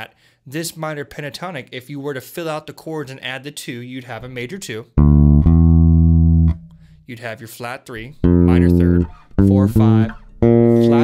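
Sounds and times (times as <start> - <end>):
electric bass guitar plucked notes: 5.0 - 7.1, 8.0 - 11.0.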